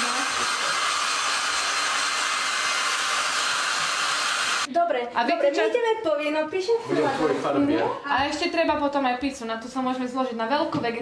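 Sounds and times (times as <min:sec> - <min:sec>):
hair dryer blowing: 0:00.0 - 0:04.7.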